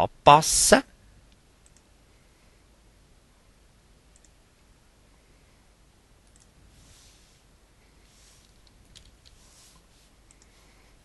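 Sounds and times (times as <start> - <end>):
soft hiss: 0.0 - 11.0
computer mouse clicks: 1.6 - 1.9, 4.1 - 4.4, 6.2 - 6.6, 8.4 - 9.4, 10.2 - 10.6.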